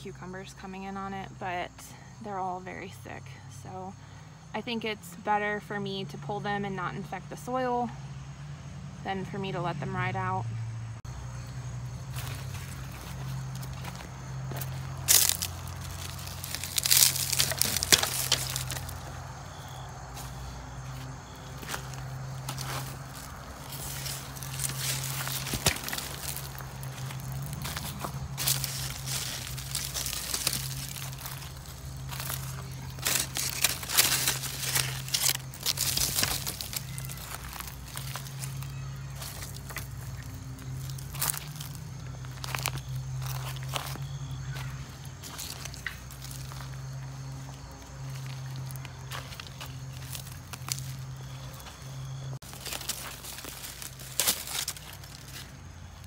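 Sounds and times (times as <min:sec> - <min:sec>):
dry leaves rustling and crackling: 0:11.1 - 0:56.0
soil crunching: 0:11.1 - 0:56.0.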